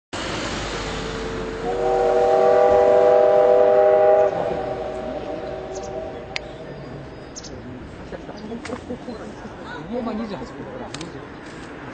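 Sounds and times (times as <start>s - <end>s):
steam locomotive whistle blowing: 1.0s - 7.0s.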